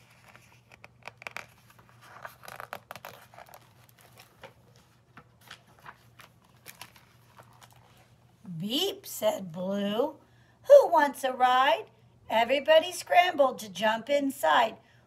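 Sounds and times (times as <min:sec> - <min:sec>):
paper pages rustling and turning: 0:00.0 - 0:08.2.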